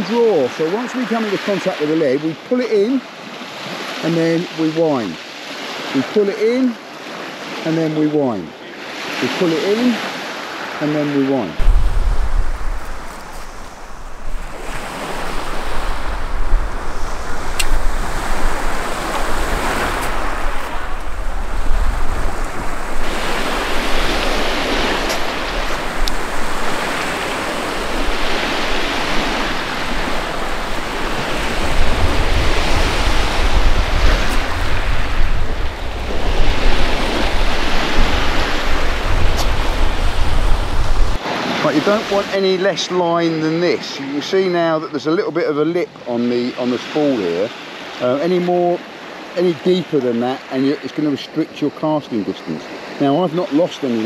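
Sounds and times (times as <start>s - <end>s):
waves breaking on shingle: 11.6s - 40.8s
wind rumble on microphone: 11.6s - 41.2s.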